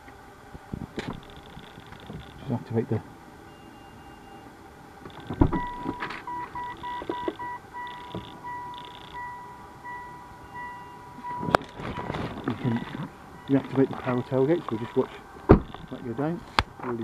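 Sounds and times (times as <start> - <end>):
tailgate moving: 0.7 - 2.4, 5.0 - 17.0
warning buzzer beeping: 3.5 - 16.4.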